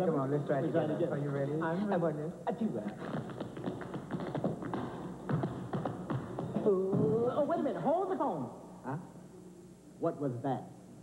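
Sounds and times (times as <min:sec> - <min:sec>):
tap shoes on stage floor: 0:02.8 - 0:07.5.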